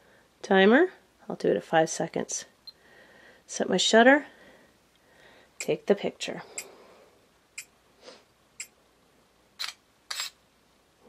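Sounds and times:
camera shutter sounds: 9.6s - 10.4s.

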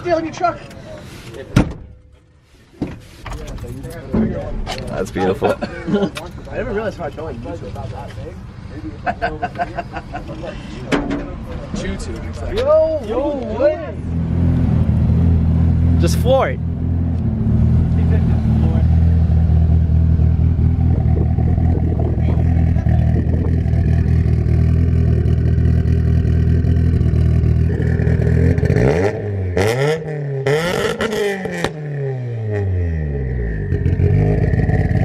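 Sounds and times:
car engine idling and revving: 11.4s - 35.0s.

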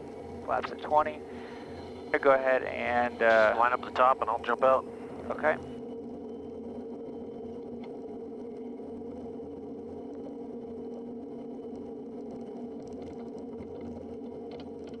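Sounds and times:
turboprop engine idling: 0.0s - 15.0s.

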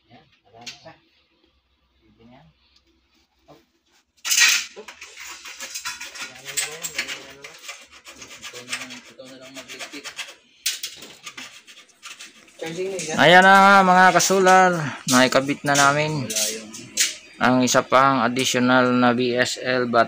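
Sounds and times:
rasping rubbing and scraping: 3.1s - 18.8s.

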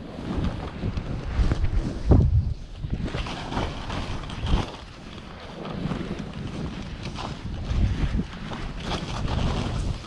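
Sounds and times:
skis scraping through snow: 0.0s - 10.0s
wind on microphone: 0.0s - 10.0s.

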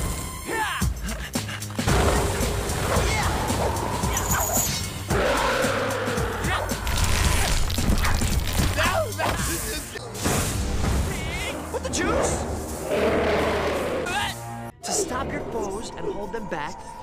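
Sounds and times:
action music: 0.0s - 17.0s
creature-like sounds: 2.8s - 8.9s.

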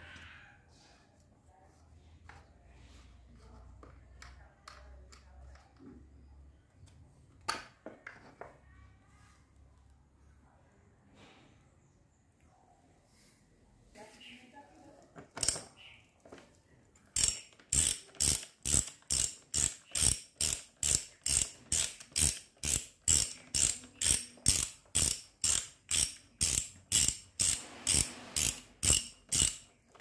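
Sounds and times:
ratchet wrench clicking: 15.4s - 15.7s, 17.2s - 29.7s.

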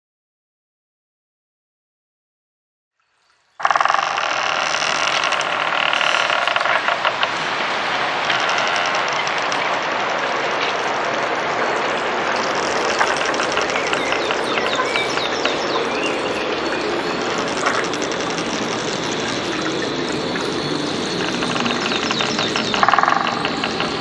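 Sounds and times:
synthesized hiss with ringing tones: 3.0s - 24.0s
fine crackling clicks: 3.6s - 7.4s, 8.1s - 24.0s.

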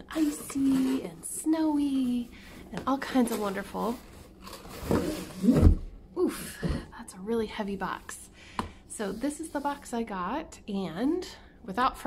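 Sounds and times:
cardboard rustling and scraping: 0.0s - 5.9s.

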